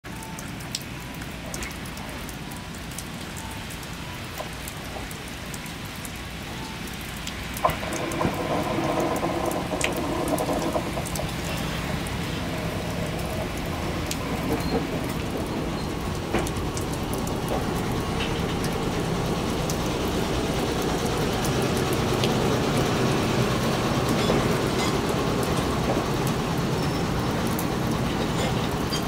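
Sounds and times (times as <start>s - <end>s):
drips on a roof: 0.0s - 29.0s
steady rain: 0.0s - 29.0s
electric train humming: 7.6s - 29.0s.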